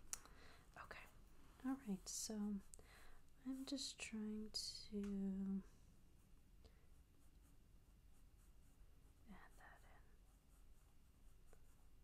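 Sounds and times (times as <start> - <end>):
pencil scratching on paper: 6.9 - 12.0.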